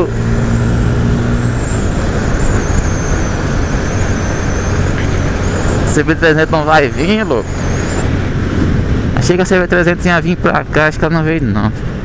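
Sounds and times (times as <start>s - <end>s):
motorcycle engine: 0.0s - 10.7s.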